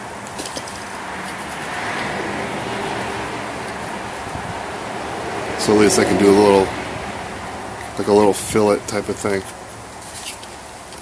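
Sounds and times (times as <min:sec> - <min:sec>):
outdoor rushing noise: 0:00.0 - 0:10.8.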